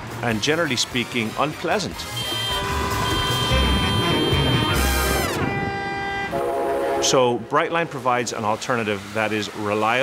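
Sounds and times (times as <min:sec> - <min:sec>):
train air horn chord: 0:02.1 - 0:07.4
low train rumble: 0:03.0 - 0:10.0.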